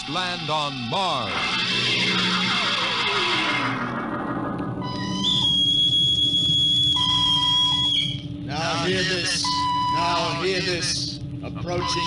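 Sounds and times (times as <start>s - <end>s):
low steady hum: 0.0s - 12.0s
high steady whistle: 4.7s - 8.3s, 9.2s - 10.4s, 11.7s - 12.0s.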